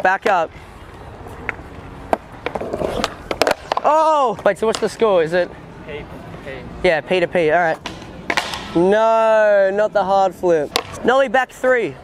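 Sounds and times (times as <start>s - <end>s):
skateboard wheels rolling on stone: 1.3s - 5.0s
sharp skateboard clicks: 1.4s - 4.9s, 7.7s - 8.8s, 10.7s - 11.0s.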